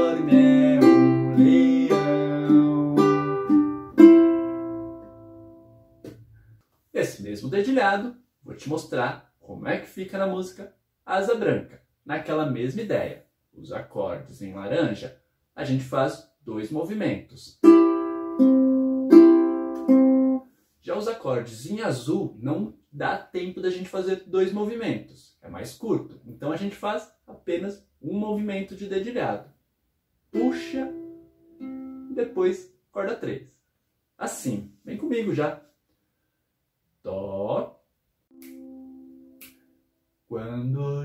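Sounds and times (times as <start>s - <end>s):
ukulele fingerpicking: 0.0s - 5.3s, 17.6s - 20.4s, 30.4s - 32.2s, 38.3s - 39.5s.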